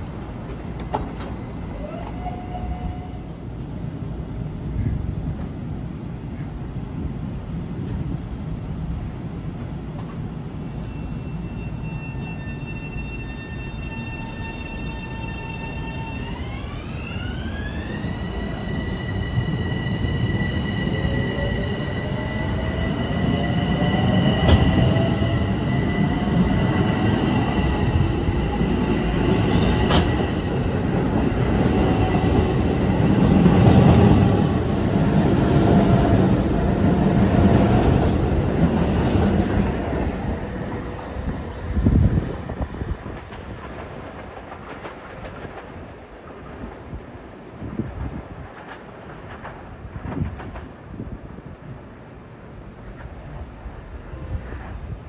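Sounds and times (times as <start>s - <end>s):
train wheels rumbling: 7.7s - 55.0s.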